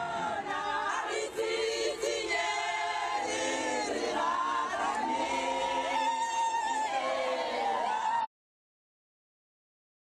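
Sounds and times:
choir singing long gliding notes: 0:00.0 - 0:08.3.

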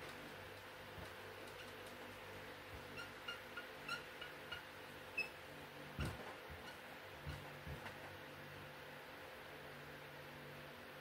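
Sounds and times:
faint room hum: 0:00.0 - 0:11.0
marker squeaking on whiteboard: 0:02.8 - 0:05.4, 0:06.0 - 0:07.6.

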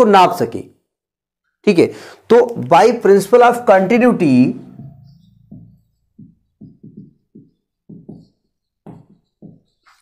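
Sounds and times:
marker writing on whiteboard: 0:04.8 - 0:10.0.

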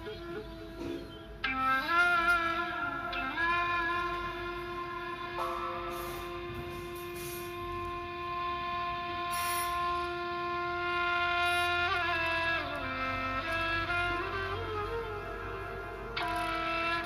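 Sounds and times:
wind instrument holding a note: 0:00.0 - 0:17.0.

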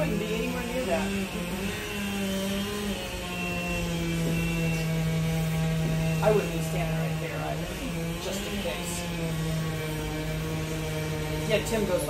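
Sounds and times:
distant chainsaw running: 0:00.0 - 0:12.0.

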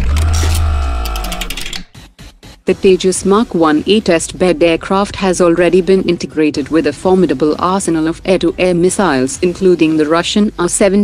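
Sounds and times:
rapid ticking: 0:00.0 - 0:02.7.

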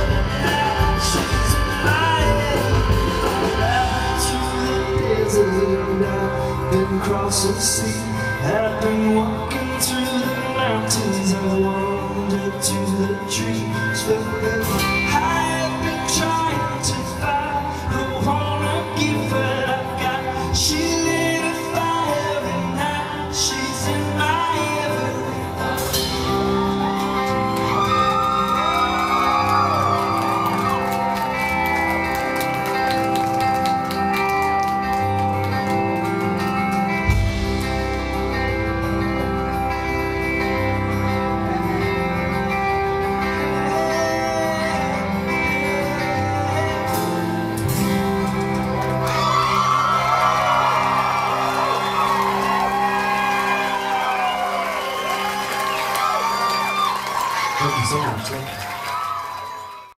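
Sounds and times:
acoustic guitars strumming: 0:00.0 - 0:55.8
drums: 0:00.0 - 0:58.1
crowd cheering and whooping: 0:24.2 - 0:40.4, 0:47.5 - 1:00.0.

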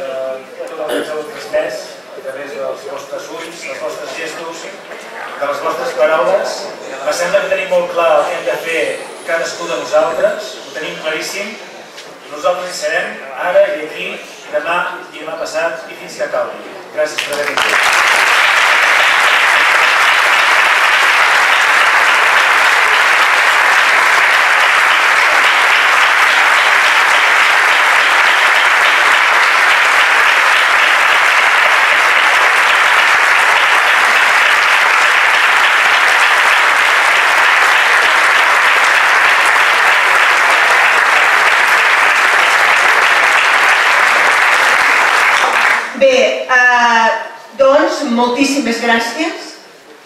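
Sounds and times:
large audience applauding: 0:17.2 - 0:46.0.

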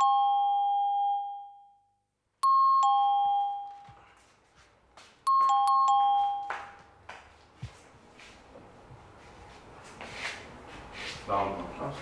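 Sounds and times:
two-tone doorbell chime: 0:00.0 - 0:04.1, 0:05.3 - 0:06.8.

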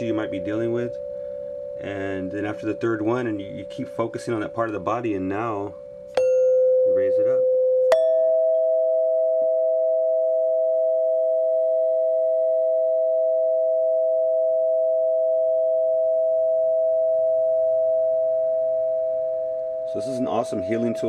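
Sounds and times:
metal tubes ringing chord: 0:00.0 - 0:10.7.

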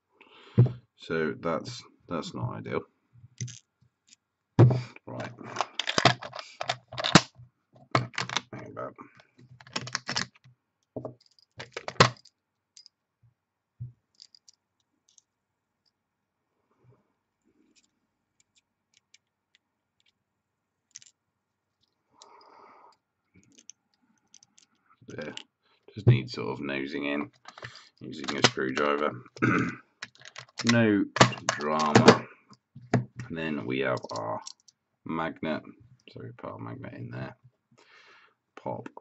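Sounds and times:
small metal parts clicking: 0:03.4 - 0:04.2, 0:05.6 - 0:07.3, 0:09.5 - 0:10.4, 0:11.1 - 0:12.9, 0:14.1 - 0:15.3, 0:20.9 - 0:21.2, 0:23.4 - 0:25.4, 0:30.0 - 0:32.2, 0:34.0 - 0:34.8.

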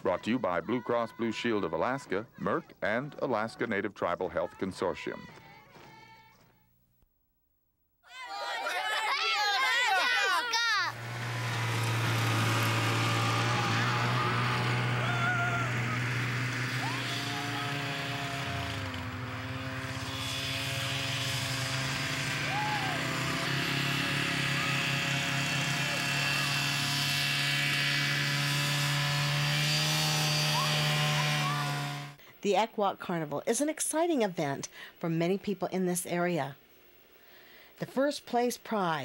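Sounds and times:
atv engine running: 0:10.9 - 0:32.2.

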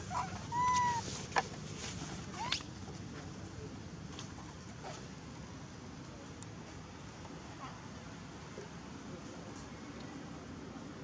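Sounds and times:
young macaque squeaking: 0:00.1 - 0:01.0.

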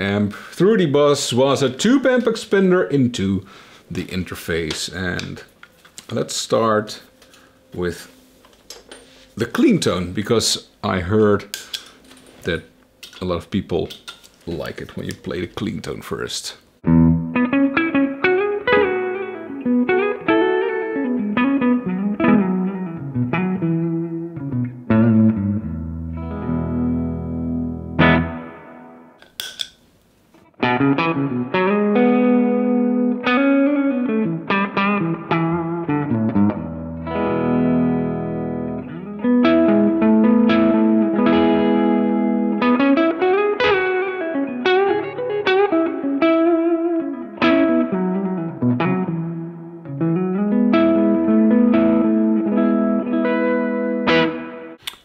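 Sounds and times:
electric guitar playing: 0:16.8 - 0:29.2, 0:30.5 - 0:54.8.

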